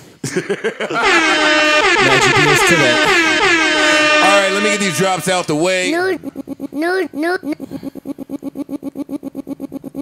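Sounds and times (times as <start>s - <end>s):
air horn blast: 0.9s - 5.7s.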